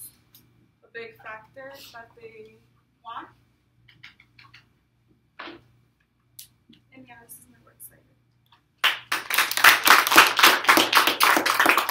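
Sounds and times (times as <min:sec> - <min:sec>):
audience applause: 0:08.8 - 0:11.9.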